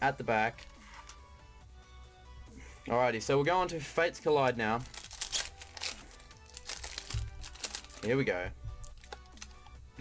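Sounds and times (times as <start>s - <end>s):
quiet background music: 0.0s - 10.0s
foil wrapper crinkling: 4.8s - 8.2s, 8.8s - 9.7s.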